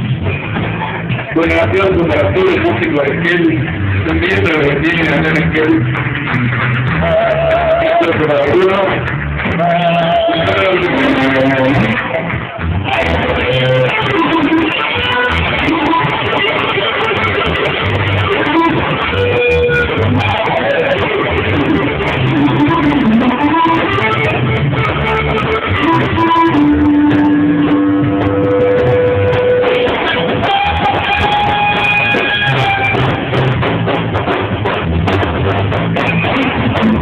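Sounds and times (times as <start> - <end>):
bass and drums: 0.0 - 37.0
electric guitar held notes: 0.0 - 37.0.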